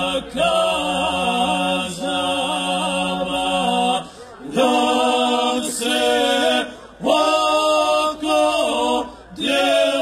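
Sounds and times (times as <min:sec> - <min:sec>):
men singing unaccompanied: 0:00.0 - 0:10.0.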